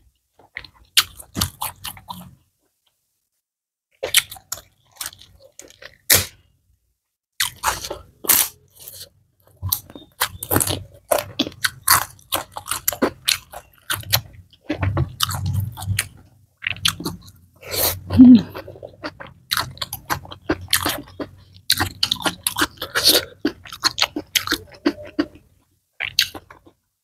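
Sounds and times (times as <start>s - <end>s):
person chewing crunchy food: 0.4s - 2.4s, 4.0s - 6.4s, 7.4s - 26.8s.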